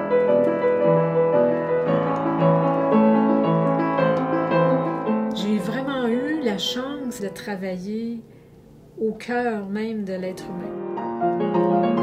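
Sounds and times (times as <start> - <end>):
piano notes and chords: 0.0 - 7.8, 10.1 - 12.0.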